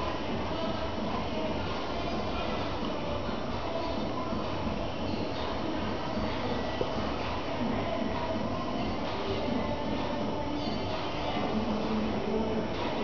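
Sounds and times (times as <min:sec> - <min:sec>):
steady rumbling background noise: 0:00.0 - 0:13.0.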